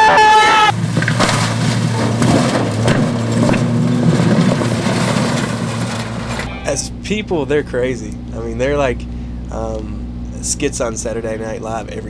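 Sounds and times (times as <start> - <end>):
truck engine running: 0.0 - 12.0
vegetation crunching against truck: 0.2 - 6.8
man speaking: 6.5 - 12.0.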